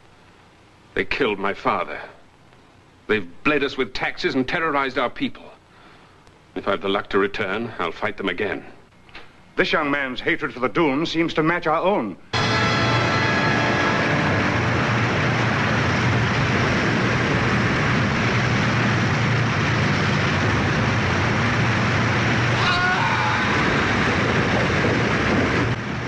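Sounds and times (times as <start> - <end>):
waterfall rushing: 12.4 - 25.8
brief voice-like cry: 22.6 - 23.9.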